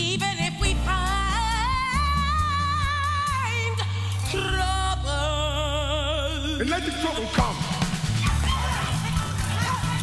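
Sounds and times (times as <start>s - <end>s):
busy percussion: 6.8s - 10.0s.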